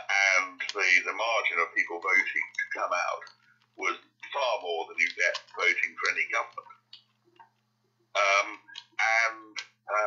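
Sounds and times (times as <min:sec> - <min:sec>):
person talking: 0:00.0 - 0:07.4, 0:08.0 - 0:10.0.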